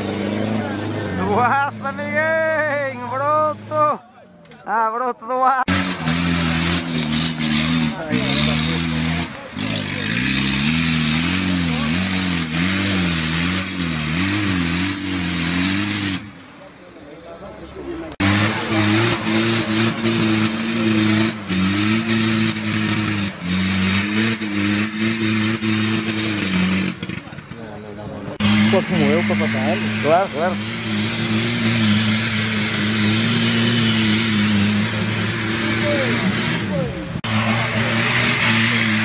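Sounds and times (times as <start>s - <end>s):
off-road engine revving: 0.0s - 4.0s, 4.6s - 39.0s.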